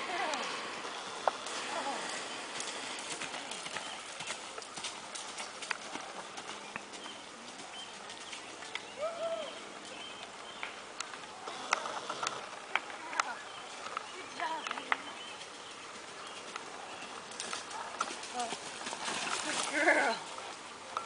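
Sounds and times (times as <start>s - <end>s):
horse hoofbeats on dirt: 0.0s - 9.0s, 11.4s - 20.6s
steady outdoor hiss: 0.0s - 21.0s.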